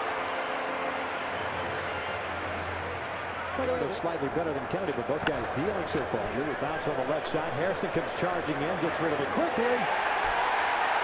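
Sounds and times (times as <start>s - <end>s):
stadium crowd murmur: 0.0s - 11.0s.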